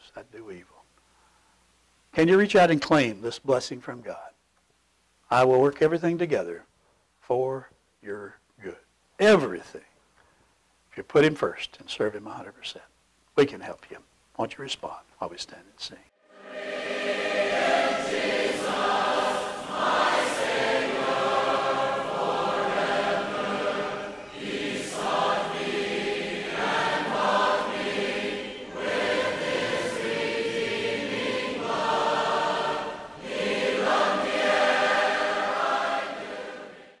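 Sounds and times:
group singing a hymn: 0:16.2 - 0:37.0.

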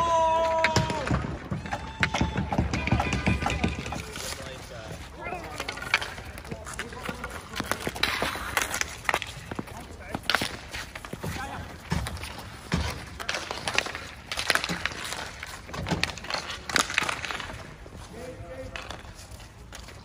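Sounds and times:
hockey sticks clacking: 0:00.0 - 0:20.0.

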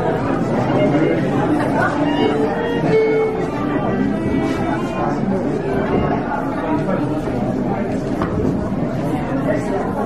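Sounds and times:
faint fiddle notes: 0:00.0 - 0:07.6
crowd chattering in a hall: 0:00.0 - 0:10.0.

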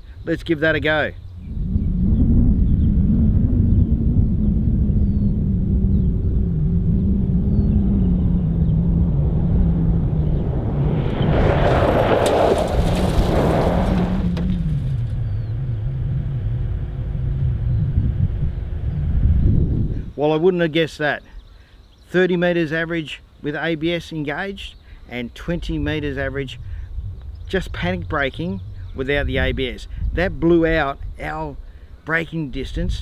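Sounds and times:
car engine rumbling: 0:01.3 - 0:19.9
tyres skidding over gravel: 0:11.0 - 0:15.5.

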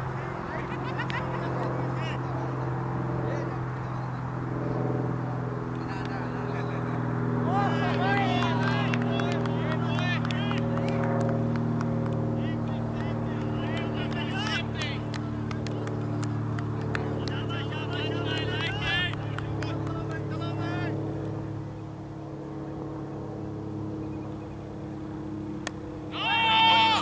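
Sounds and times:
engine hum: 0:00.0 - 0:27.0.

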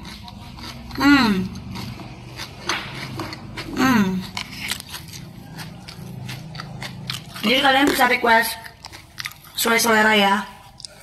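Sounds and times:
chewing crispy potato chips: 0:00.0 - 0:11.0.

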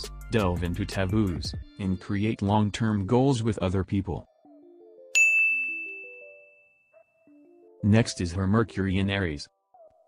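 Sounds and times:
soft background music: 0:00.0 - 0:10.0
bright chime ding: 0:05.2 - 0:06.9.

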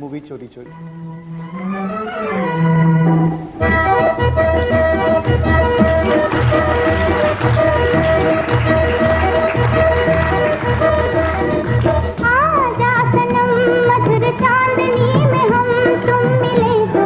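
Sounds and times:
accordion melody: 0:00.6 - 0:17.0.

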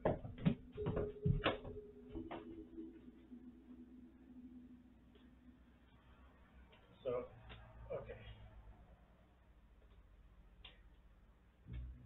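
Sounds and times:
balls hitting floor: 0:00.0 - 0:02.6
faint steady hum: 0:00.0 - 0:12.0.

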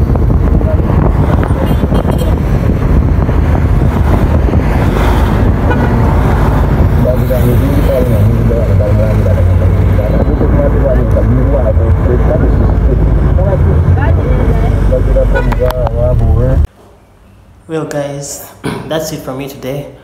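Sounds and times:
indistinct voices: 0:00.0 - 0:16.7
wind on microphone: 0:00.0 - 0:16.7
busy road traffic: 0:00.0 - 0:20.0.

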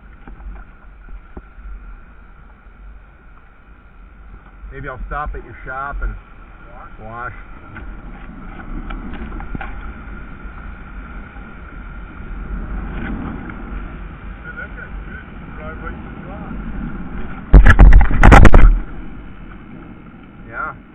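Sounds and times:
choppy water: 0:00.0 - 0:20.9
wind rumbling on microphone: 0:00.0 - 0:20.9
loud knocks and rumble: 0:17.2 - 0:19.3.

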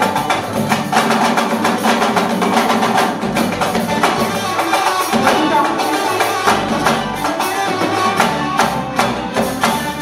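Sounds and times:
fast dense percussion: 0:00.0 - 0:10.0
live band music: 0:00.0 - 0:10.0.

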